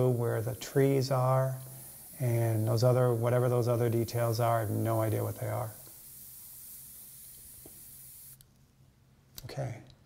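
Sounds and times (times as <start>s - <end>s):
airbrush hissing: 0.0s - 8.4s.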